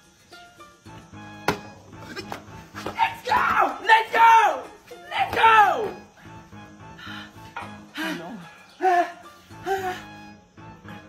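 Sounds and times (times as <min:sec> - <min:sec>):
background music: 0:00.0 - 0:11.0
shouting: 0:02.8 - 0:06.1.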